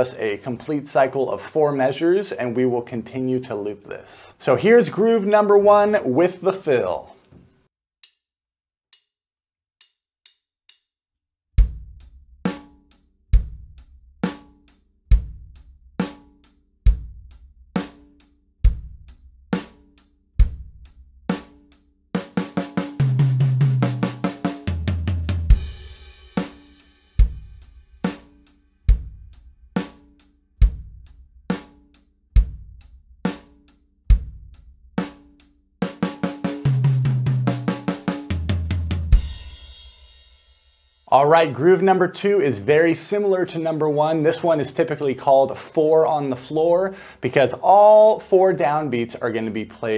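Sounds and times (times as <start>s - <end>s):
drum kit rock groove: 11.6s - 46.6s.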